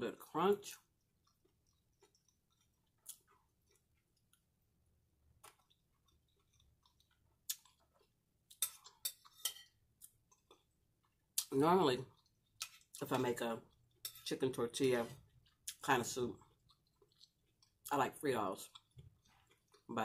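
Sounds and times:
chewing crunchy food: 0.7 - 4.6, 5.2 - 14.3, 15.0 - 20.0.

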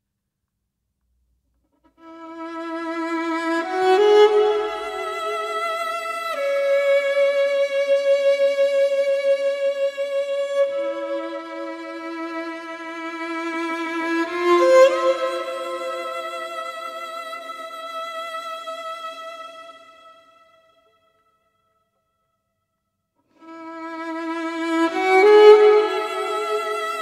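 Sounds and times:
violin playing slow melody: 1.8 - 20.6, 23.4 - 27.0.

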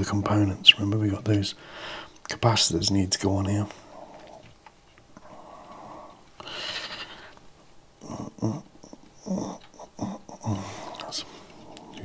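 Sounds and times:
man breathing out: 5.2 - 7.4
man murmuring wordlessly: 8.0 - 12.0.

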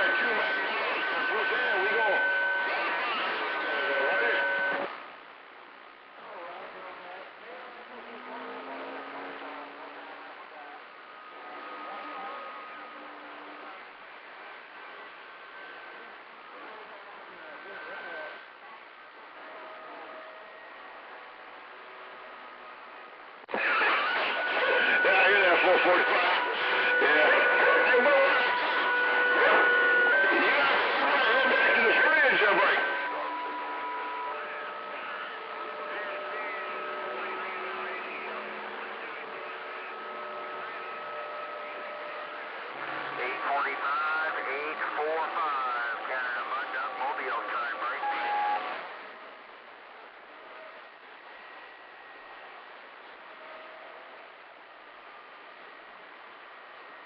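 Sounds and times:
garbled radio voices: 0.0 - 5.1, 23.5 - 49.3
radio hiss: 0.0 - 57.0.

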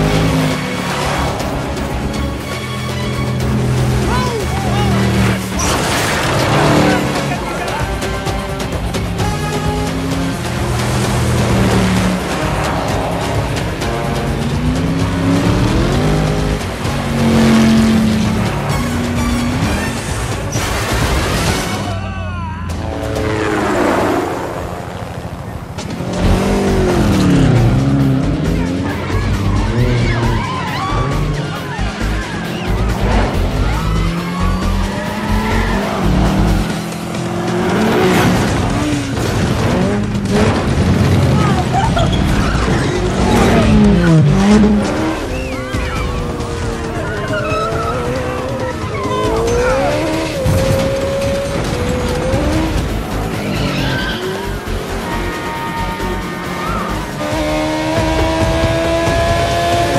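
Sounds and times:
car engines revving hard: 0.0 - 59.9
film score music: 0.0 - 59.9
tyres squealing: 28.5 - 38.2, 41.3 - 58.4.

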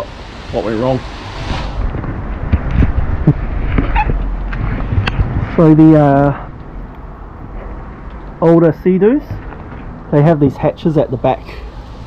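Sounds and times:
wind rumbling on microphone: 0.3 - 10.1.

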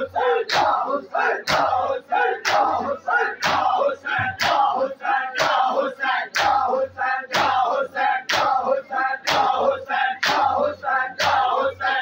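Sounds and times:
loud group chant: 0.0 - 12.0
men beating chests in unison: 0.2 - 4.8, 5.4 - 6.7, 7.3 - 12.0.

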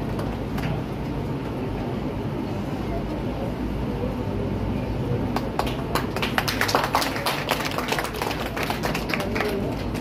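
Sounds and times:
steady low hum: 0.0 - 10.0
audience applauding: 5.4 - 10.0.

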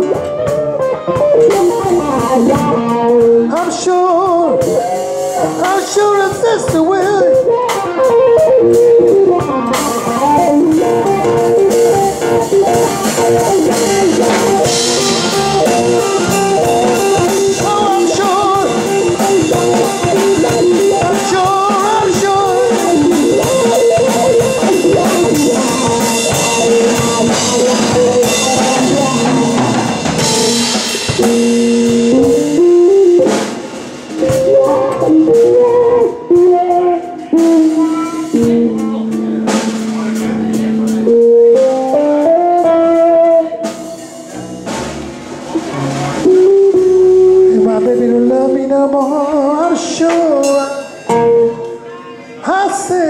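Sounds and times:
drum kit: 0.0 - 52.0
tapped touch instrument melody: 4.8 - 43.8.

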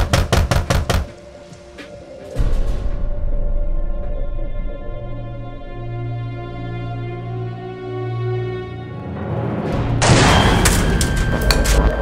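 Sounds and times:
rapid knocking on door: 0.0 - 1.1
quiet sustained music: 0.0 - 12.0.

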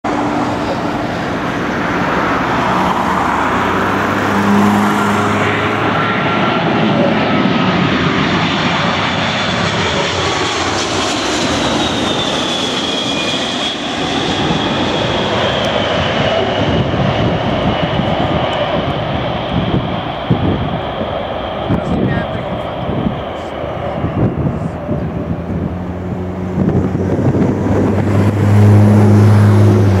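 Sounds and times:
jet airliner passing overhead: 0.0 - 30.0.

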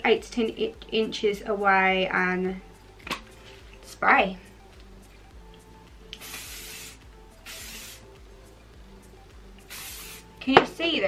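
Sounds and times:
aerosol spray hissing: 6.1 - 8.2, 9.6 - 10.4.

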